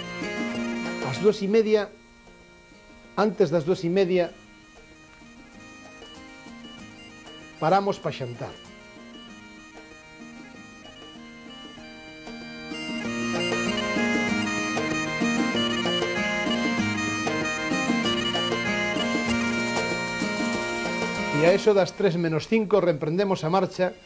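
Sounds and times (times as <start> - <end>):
bagpipe-like folk melody: 0.0 - 24.0.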